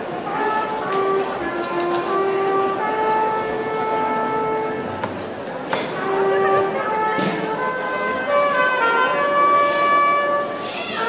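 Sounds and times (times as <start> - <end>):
brass band playing held chords: 0.0 - 11.0
crowd murmur: 0.0 - 11.0.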